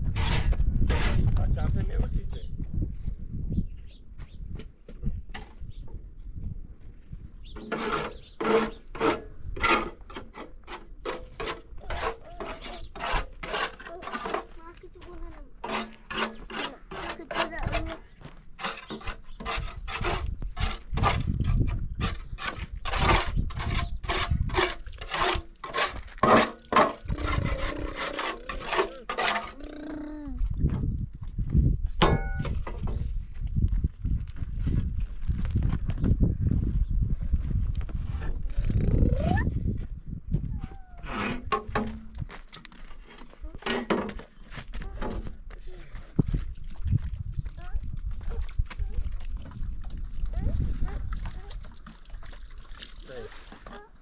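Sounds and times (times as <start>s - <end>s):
shovel scraping in metal wheelbarrow: 7.6s - 14.6s, 15.6s - 18.0s, 18.6s - 29.7s, 32.1s - 32.8s, 41.0s - 42.2s.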